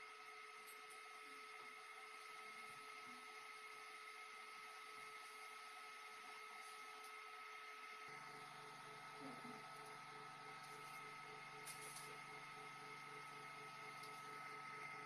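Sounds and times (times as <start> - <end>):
faint steady hum: 0.0 - 15.0.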